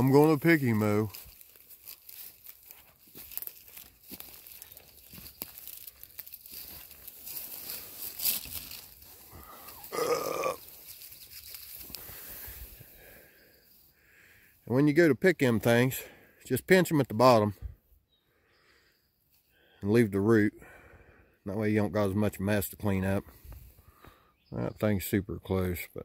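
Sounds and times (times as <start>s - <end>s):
leaves and twigs crunching: 0.0s - 14.2s
short vocal sound: 9.4s - 10.6s.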